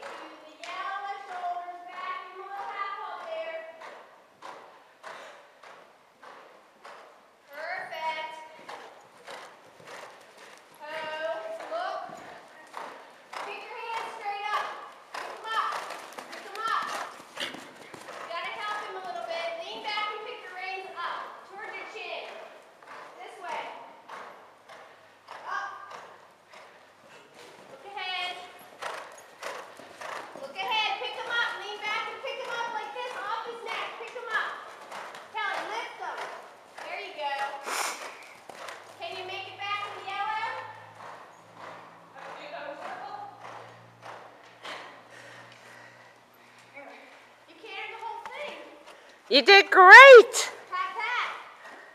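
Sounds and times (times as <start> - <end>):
horse hoofbeats on soft ground: 0.0 - 49.3
high-pitched voices talking: 49.3 - 50.5
person calling out: 49.3 - 50.5.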